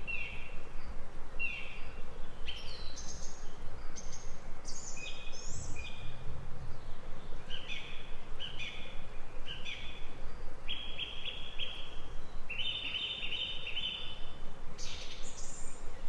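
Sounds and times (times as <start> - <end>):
songbird singing: 0.0 - 16.0
steady microphone hiss: 0.0 - 16.0.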